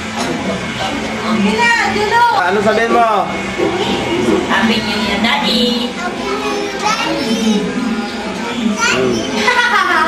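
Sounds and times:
young children talking: 4.8s - 10.0s.

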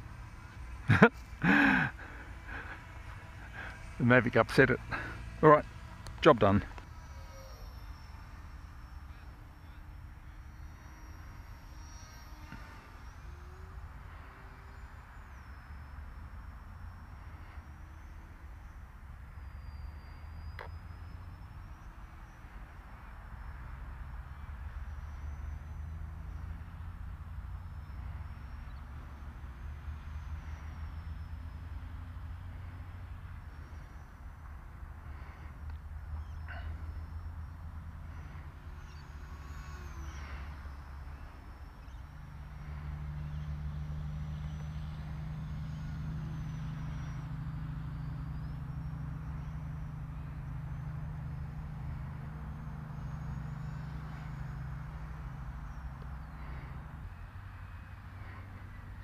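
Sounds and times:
high whine of plane motor: 0.0s - 59.0s.

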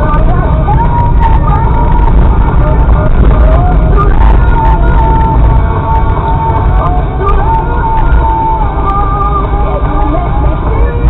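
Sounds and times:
radio song with singing: 0.0s - 11.0s
vehicle cab rumble: 0.0s - 11.0s.

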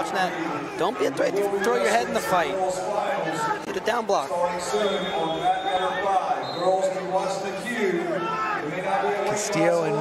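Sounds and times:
spectators and coaches calling out: 0.0s - 10.0s.

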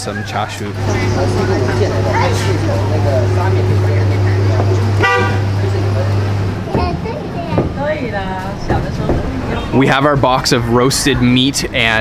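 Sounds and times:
people talking: 0.0s - 12.0s
steady low hum: 0.0s - 12.0s
vehicle horn toot: 5.0s - 5.7s.

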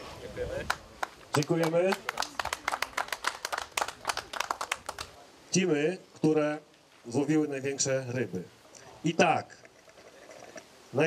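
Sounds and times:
small crowd applauding: 0.6s - 5.2s.

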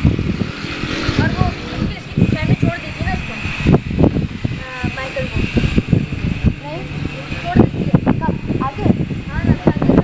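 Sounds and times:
boy talking: 1.0s - 3.5s, 4.5s - 5.7s, 6.6s - 10.0s.

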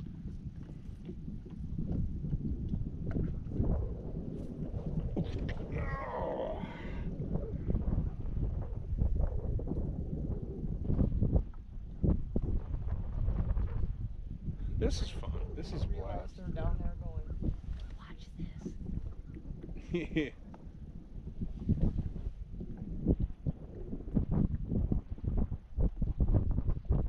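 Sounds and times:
wind rumbling on microphone: 0.0s - 27.0s.

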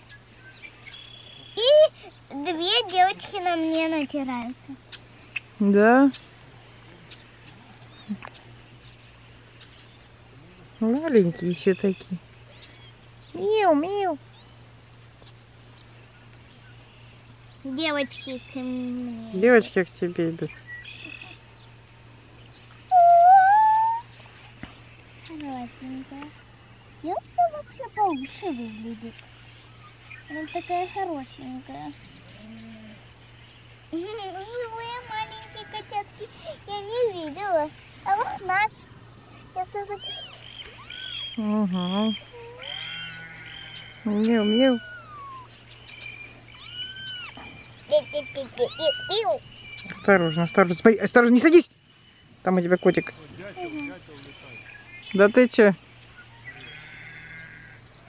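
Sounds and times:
kittens mewing: 46.5s - 47.5s, 48.5s - 50.6s.

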